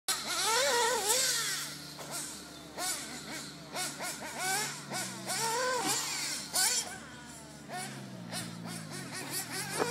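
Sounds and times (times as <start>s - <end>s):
rc car engine revving: 0.1s - 9.9s.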